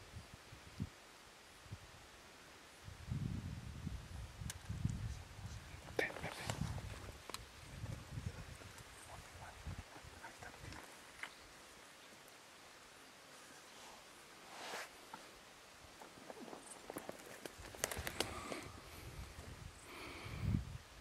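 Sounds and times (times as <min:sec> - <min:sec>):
light rustles: 0:16.0 - 0:19.6.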